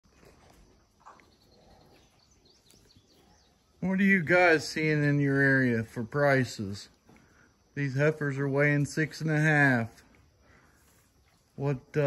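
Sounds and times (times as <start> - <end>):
faint farmyard ambience: 0.0 - 12.0
soft bird chirps: 0.9 - 4.2.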